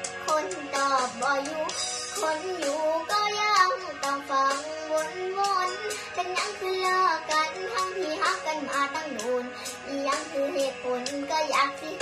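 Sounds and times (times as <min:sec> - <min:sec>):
backing track with beat: 0:00.0 - 0:12.0
girl singing: 0:00.2 - 0:12.0.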